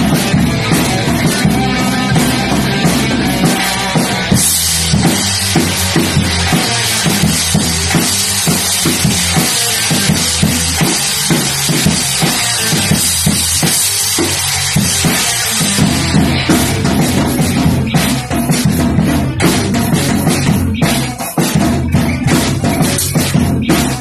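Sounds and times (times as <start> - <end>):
bass drum rock beat: 0.0 - 24.0.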